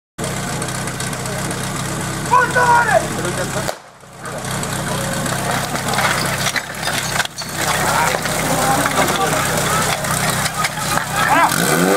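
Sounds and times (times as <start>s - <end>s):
small engine idling: 0.2s - 11.9s.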